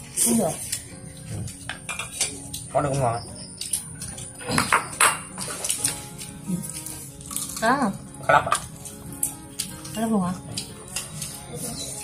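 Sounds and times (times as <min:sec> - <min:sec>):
chopsticks clinking on ceramic bowls: 0:01.5 - 0:06.0.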